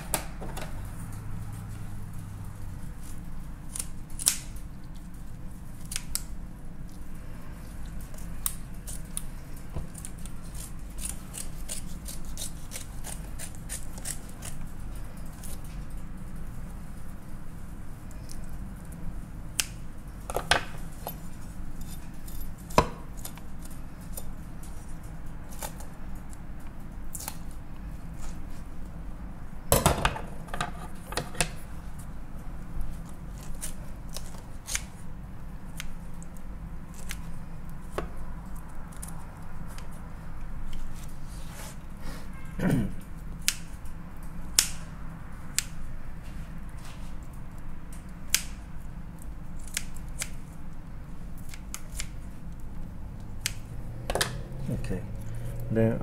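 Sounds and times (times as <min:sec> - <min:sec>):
steady low hum: 0:00.0 - 0:56.0
kitchen shears snipping flesh: 0:03.6 - 0:04.6, 0:05.8 - 0:06.4, 0:08.0 - 0:14.7, 0:33.0 - 0:35.0, 0:49.6 - 0:50.4, 0:51.4 - 0:52.2.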